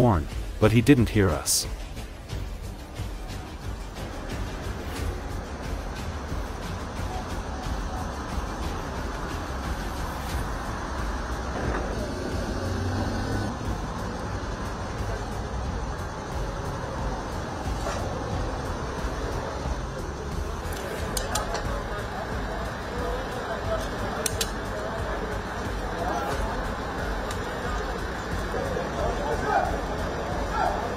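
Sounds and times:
road traffic rumble: 0.0s - 30.9s
indistinct voices: 6.8s - 30.9s
sharp clicks: 20.6s - 21.7s, 23.8s - 24.7s.

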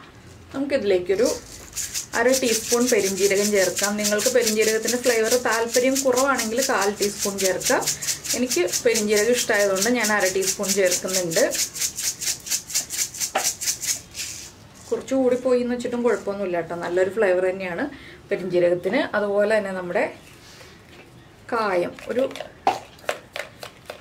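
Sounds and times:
spice grinder ratcheting rattle: 1.2s - 14.4s.

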